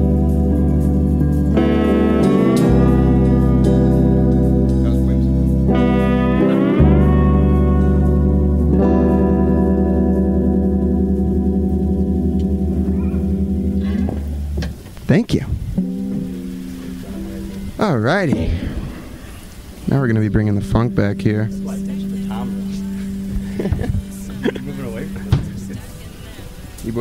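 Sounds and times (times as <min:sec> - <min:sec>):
guitar notes sliding up: 0:00.0 - 0:14.6, 0:15.6 - 0:26.8
live band sustained chords: 0:00.0 - 0:14.8, 0:15.6 - 0:27.0.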